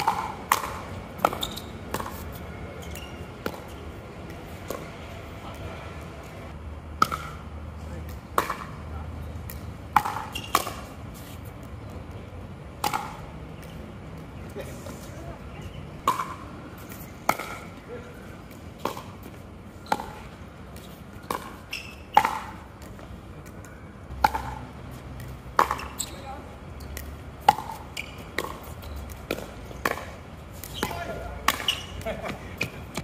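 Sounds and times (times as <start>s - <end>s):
players' voices: 2.0s - 6.5s, 13.6s - 21.0s, 28.5s - 33.0s.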